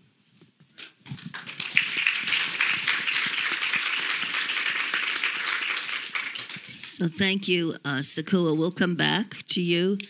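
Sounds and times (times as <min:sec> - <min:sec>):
audience applauding: 0:01.1 - 0:07.0.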